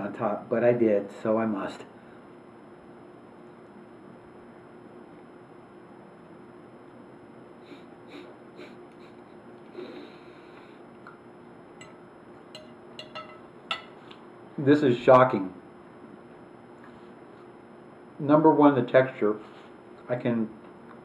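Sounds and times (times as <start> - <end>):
faint steady hum: 0.0 - 21.0
breathing through the nose: 9.7 - 10.8.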